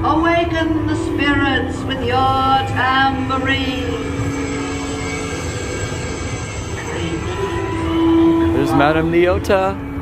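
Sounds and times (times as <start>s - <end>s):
low held notes: 0.0s - 10.0s
ride cars rumbling on track: 0.0s - 10.0s.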